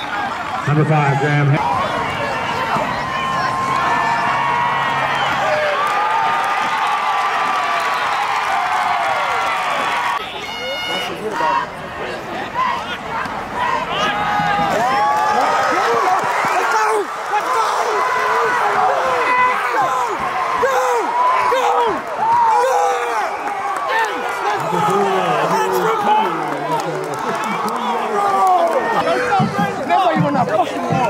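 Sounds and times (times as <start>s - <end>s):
stadium crowd cheering and yelling: 0.0s - 31.0s.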